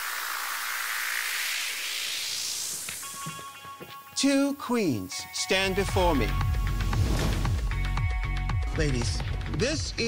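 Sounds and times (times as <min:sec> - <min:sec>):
synth background music: 0:00.0 - 0:10.0.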